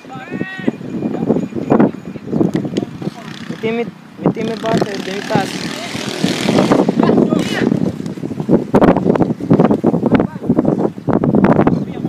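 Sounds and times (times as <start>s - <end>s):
noisy rush on microphone: 0.0s - 12.0s.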